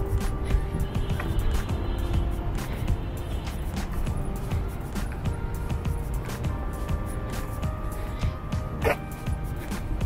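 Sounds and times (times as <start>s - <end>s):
background music with held notes: 0.0s - 10.0s
street noise rumble: 0.0s - 10.0s.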